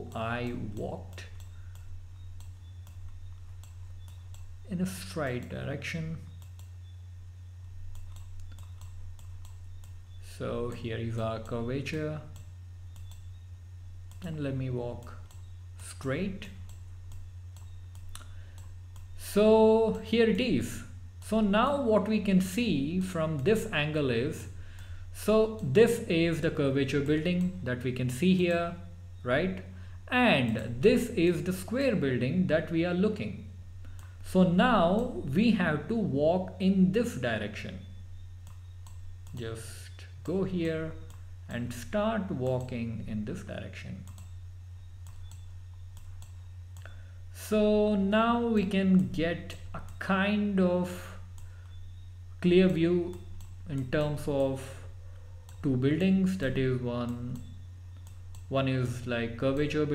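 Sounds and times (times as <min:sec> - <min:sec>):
low steady hum: 0:00.0 - 0:59.9
computer mouse clicks: 0:00.1 - 0:04.6, 0:06.3 - 0:06.8, 0:07.9 - 0:10.8, 0:12.3 - 0:13.4, 0:14.1 - 0:14.3, 0:15.0 - 0:15.5, 0:16.4 - 0:19.2, 0:33.8 - 0:34.2, 0:38.4 - 0:39.4, 0:41.0 - 0:41.3, 0:44.0 - 0:47.0, 0:49.8 - 0:50.0, 0:51.3 - 0:52.1, 0:52.7 - 0:54.5, 0:55.4 - 0:55.7, 0:57.0 - 0:58.5.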